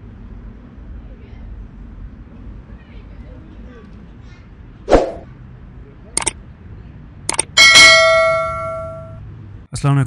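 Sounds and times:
short swish: 0:04.9 - 0:05.3
bright bell ding: 0:07.6 - 0:09.2.

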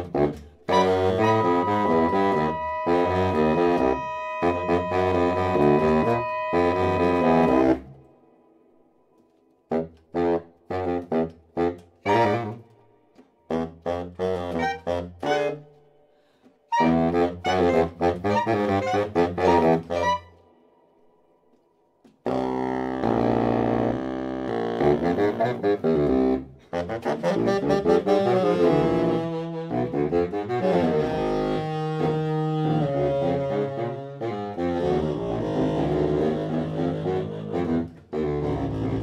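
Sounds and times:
saxophones and bass clarinet chord: 0:00.0 - 0:08.4, 0:16.7 - 0:20.2, 0:22.3 - 0:39.0
room reverberation: 0:00.0 - 0:30.6
deep bass line: 0:01.2 - 0:07.9.

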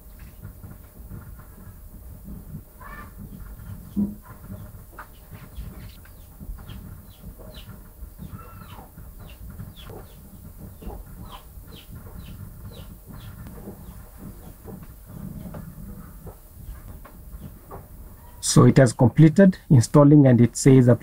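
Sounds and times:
birds chirping: 0:02.8 - 0:18.9.

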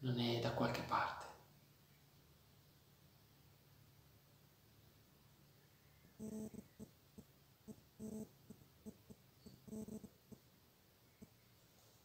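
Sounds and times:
faint animal whine: 0:05.6 - 0:07.0, 0:07.6 - 0:10.4.

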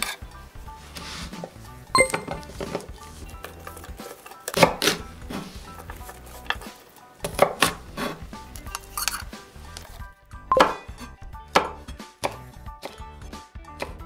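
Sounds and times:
knife striking wooden cutting board: 0:07.2 - 0:07.8.

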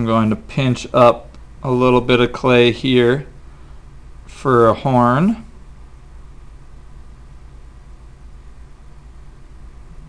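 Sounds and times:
low hum and faint hiss: 0:00.0 - 0:10.0.

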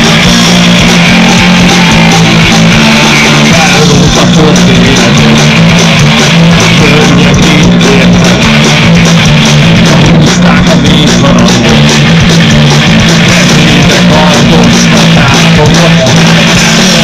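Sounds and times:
bass guitar: 0:00.0 - 0:17.0
drum kit: 0:00.0 - 0:17.0
electric guitars: 0:00.0 - 0:17.0.

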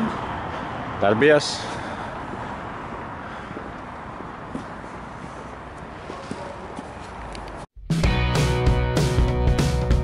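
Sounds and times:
outdoor background noise: 0:00.0 - 0:07.7.

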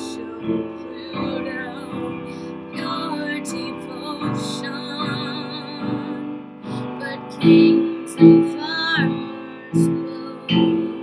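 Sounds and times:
woman singing with vibrato: 0:00.0 - 0:11.0.

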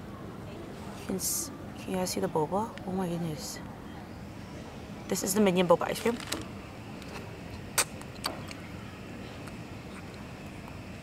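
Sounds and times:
background hum: 0:00.0 - 0:11.0.

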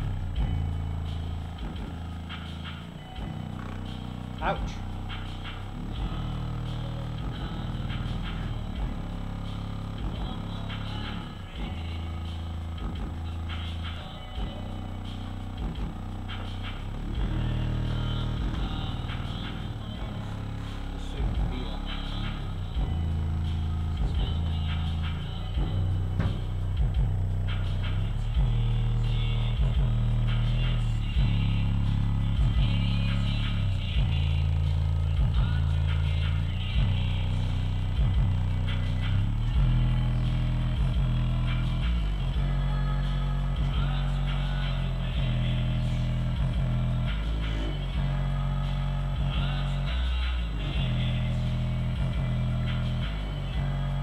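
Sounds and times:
deep bass music from subwoofers: 0:00.0 - 0:54.0.

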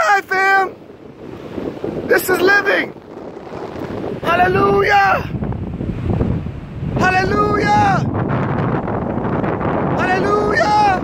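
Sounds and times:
ocean surf: 0:00.0 - 0:11.0
wind buffeting microphone: 0:00.0 - 0:11.0.

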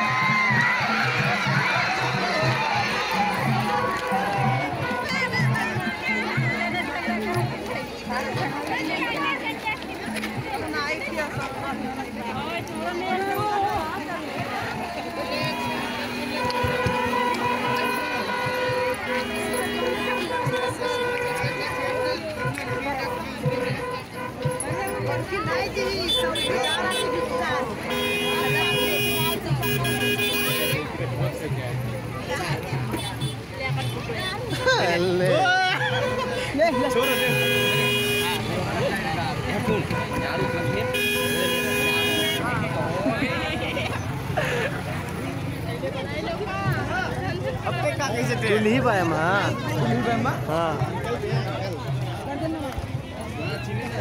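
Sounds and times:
crowd talking and calling out: 0:00.0 - 0:54.0
vehicle horn blast: 0:15.4 - 0:25.0, 0:25.9 - 0:30.8, 0:35.8 - 0:42.8.

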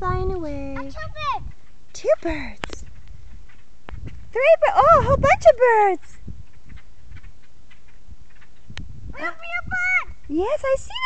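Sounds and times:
faint ticks and clicks: 0:00.9 - 0:04.5, 0:06.0 - 0:08.9.

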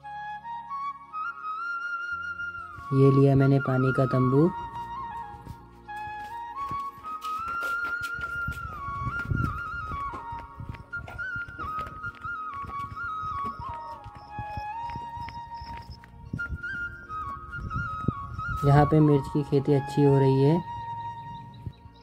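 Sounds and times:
slow flute melody: 0:00.0 - 0:22.0.

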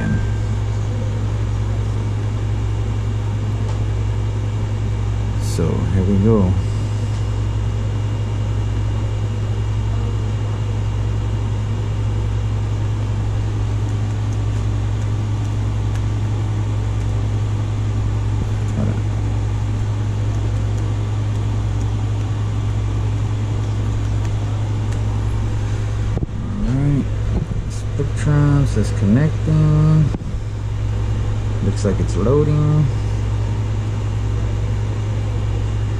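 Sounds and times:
loud low machinery hum: 0:00.0 - 0:35.9.

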